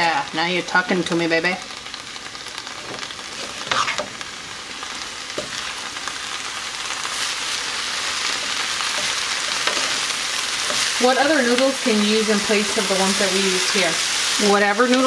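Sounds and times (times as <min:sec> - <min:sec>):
food sizzling in skillet: 0:00.0 - 0:15.0
wooden spatula scraping: 0:02.8 - 0:04.2, 0:08.2 - 0:11.1.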